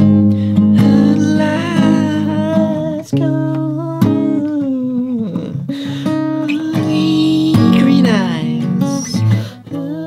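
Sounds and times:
acoustic guitar strumming: 0.0 - 10.0
man singing: 0.6 - 10.0.

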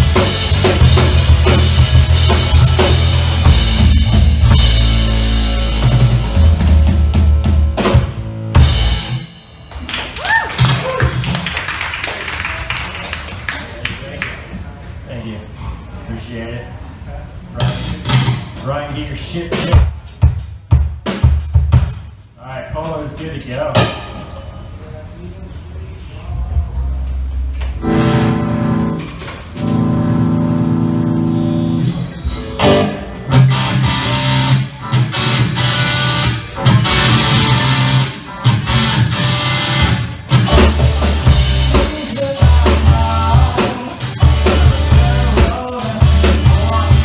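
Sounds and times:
cheering whoop: 2.4 - 3.2, 10.0 - 11.5
audience applause: 9.7 - 14.5.

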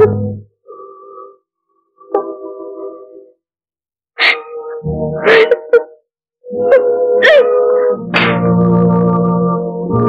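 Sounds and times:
woman crying and wailing: 5.2 - 6.0, 6.6 - 7.8.

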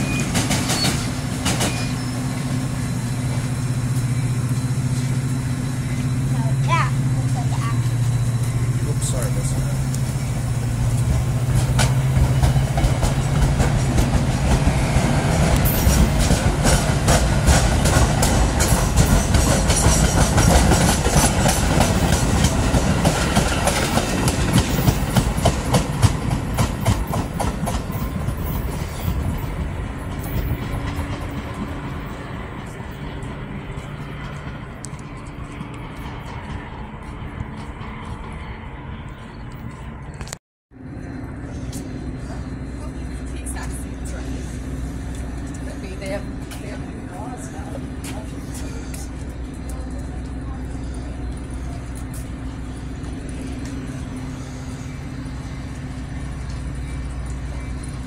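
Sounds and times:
low diesel engine hum: 0.0 - 58.0
train wheels clacking over joints: 10.9 - 38.6.

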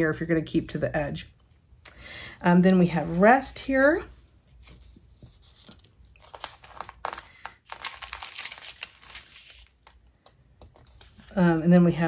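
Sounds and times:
thin pages rustling: 3.8 - 11.7.

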